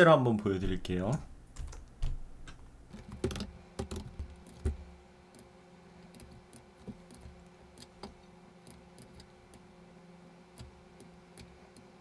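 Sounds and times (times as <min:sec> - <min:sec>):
computer input clicks and taps: 0:02.9 - 0:04.8.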